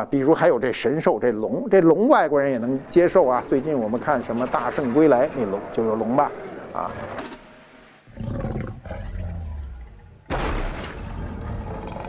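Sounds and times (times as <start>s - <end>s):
dragon growling and roaring: 4.8s - 7.4s, 8.1s - 10.3s, 11.0s - 12.0s.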